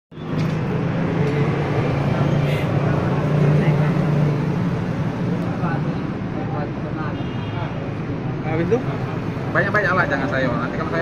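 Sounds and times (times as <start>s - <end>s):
murmur of people talking: 0.2s - 11.0s.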